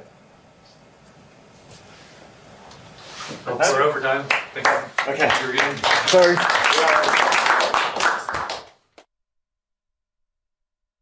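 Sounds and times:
audience clapping: 4.0 - 9.1.

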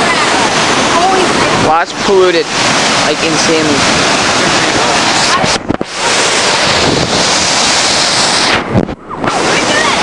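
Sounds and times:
churning whitewater: 0.0 - 10.0
wind buffeting microphone: 0.0 - 10.0.

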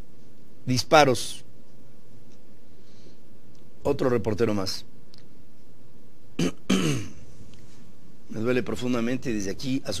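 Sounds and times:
man clearing his throat: 6.4 - 7.2.

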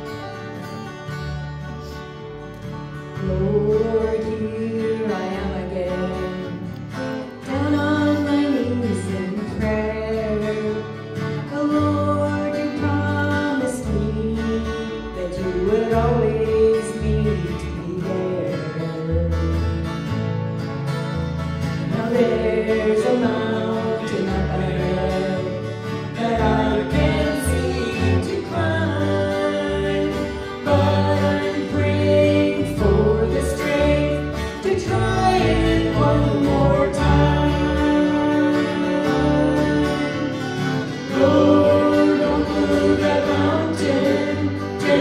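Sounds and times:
acoustic guitar: 0.0 - 45.0
bass guitar: 0.0 - 45.0
voices singing: 21.9 - 45.0.

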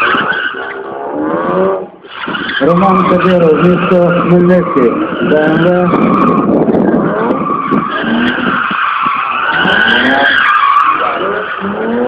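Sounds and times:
car engine revving: 0.0 - 12.0
car tyres squealing on asphalt: 0.0 - 12.0.

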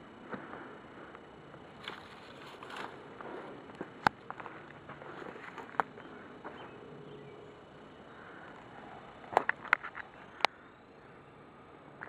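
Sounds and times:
twigs ticking: 0.3 - 6.8, 7.6 - 10.6
branches brushing clothing: 1.8 - 3.6.

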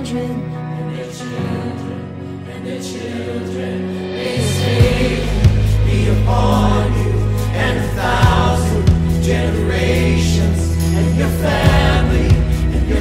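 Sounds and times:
group singing worship song: 0.0 - 13.0
instrumental backing with bass: 3.4 - 13.0.

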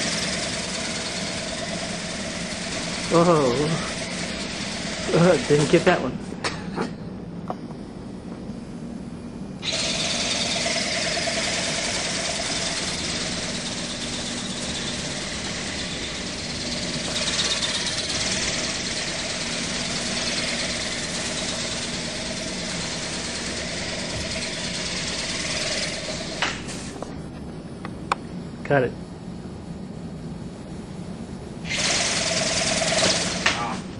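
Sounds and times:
toy ornithopter motor buzzing: 0.0 - 6.1, 9.6 - 27.0, 31.6 - 33.8.

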